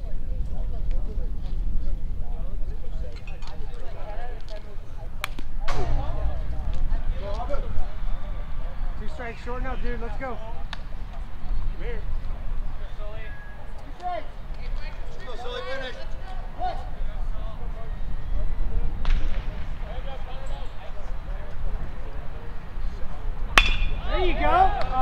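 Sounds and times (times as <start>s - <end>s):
wind rumble on microphone: 0.0s - 13.3s, 16.1s - 25.0s
distant calls and chatter: 0.0s - 25.0s
players and spectators shouting: 11.7s - 18.9s, 23.6s - 25.0s
metal bat hitting ball: 23.6s - 24.1s.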